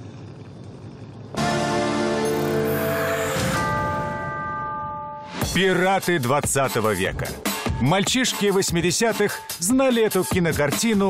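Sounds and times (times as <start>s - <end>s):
sustained musical chord: 1.4s - 5.9s
bell-like chime: 2.2s - 5.6s.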